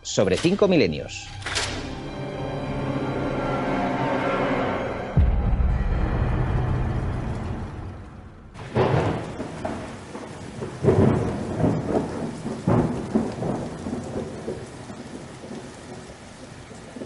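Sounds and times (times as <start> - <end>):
steady rain: 0.0 - 5.2, 6.0 - 17.0
thunderclaps rolling: 5.1 - 17.0.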